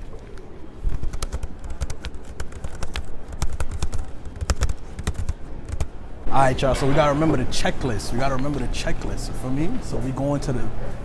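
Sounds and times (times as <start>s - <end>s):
laptop keyboard typing: 0.9s - 6.0s.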